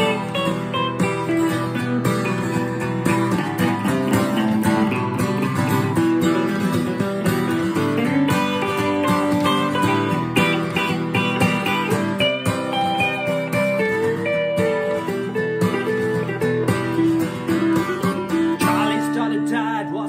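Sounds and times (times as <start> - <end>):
acoustic guitar strumming: 0.0 - 20.0
electric guitar lead melody: 0.0 - 20.0.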